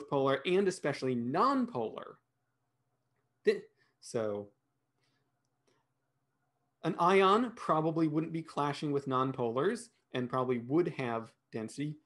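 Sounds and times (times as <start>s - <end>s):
man speaking: 0.0s - 2.3s, 3.4s - 4.7s, 6.8s - 12.0s.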